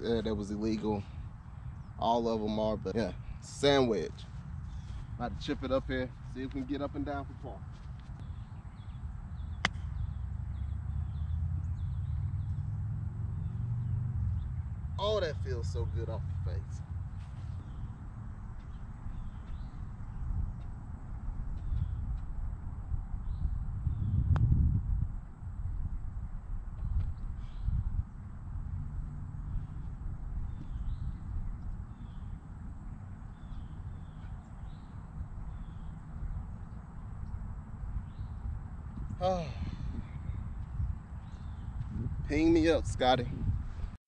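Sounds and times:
small birds chirping: 0.0 - 20.8, 21.5 - 22.3, 26.8 - 28.1, 29.4 - 43.9
wind buffeting microphone: 15.4 - 44.0.

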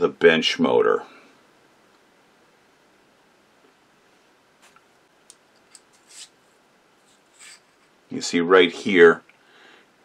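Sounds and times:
short scrapes: 5.9 - 7.9.

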